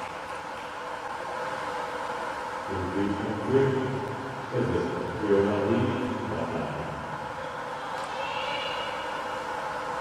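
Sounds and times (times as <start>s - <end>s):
indoor pool hall noise: 0.0s - 10.0s
man speaking: 2.7s - 7.1s.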